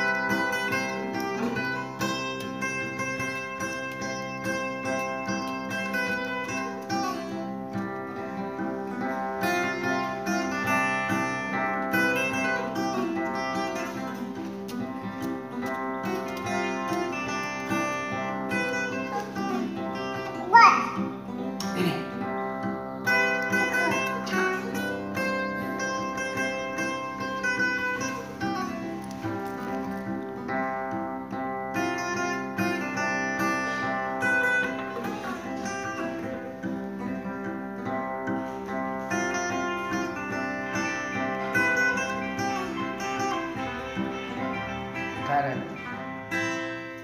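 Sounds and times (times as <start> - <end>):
acoustic guitar folk melody: 0.0 - 47.0.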